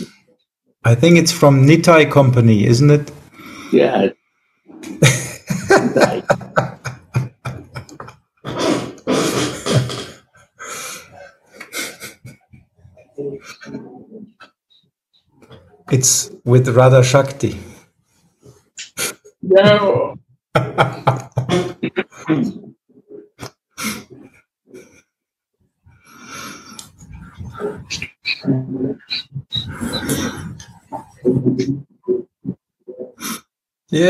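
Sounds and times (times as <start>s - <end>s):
man laughing heartily: 4.9s - 8.2s, 20.6s - 22.3s
man laughing breathily: 5.0s - 8.1s, 10.6s - 12.4s, 29.5s - 31.2s
breathy sound into cloth: 26.0s - 28.0s.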